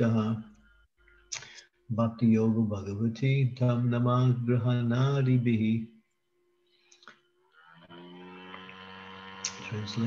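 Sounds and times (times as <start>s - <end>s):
buzzy electrical mains hum: 0.0s - 10.0s.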